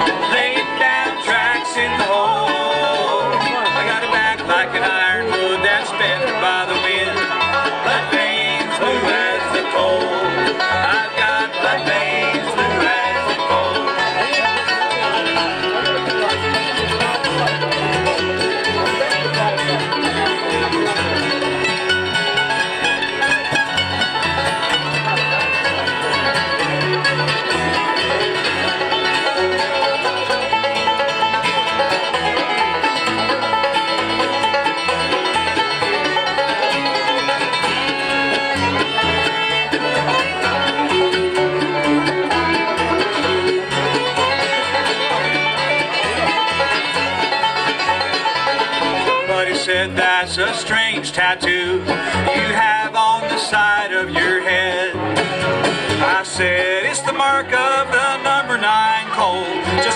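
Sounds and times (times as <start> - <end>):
acoustic guitar: 0.0 - 59.9
banjo: 0.0 - 59.9
fiddle: 0.0 - 59.9
mandolin: 0.0 - 59.9
upright bass: 0.0 - 59.9.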